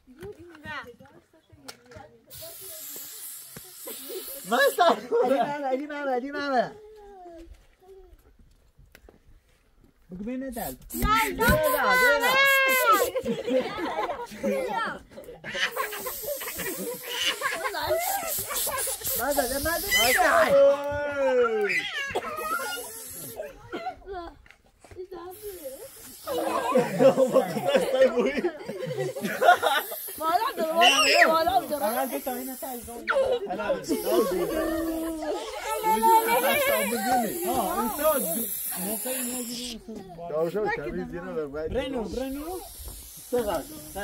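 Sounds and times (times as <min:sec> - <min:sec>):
spray cans hissing: 0:02.3 - 0:05.1, 0:10.5 - 0:13.4, 0:15.6 - 0:20.5, 0:22.0 - 0:23.4, 0:25.2 - 0:39.8, 0:42.0 - 0:44.0
voices calling: 0:10.8 - 0:24.0, 0:25.4 - 0:40.3.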